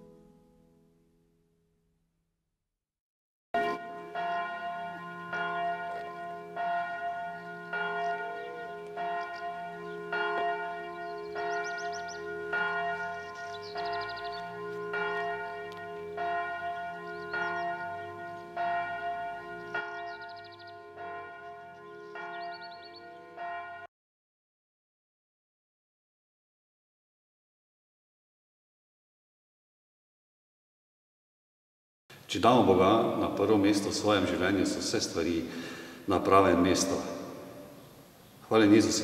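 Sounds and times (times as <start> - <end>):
church bell ringing: 3.6 - 23.9, 32.4 - 37.8, 38.6 - 39.0.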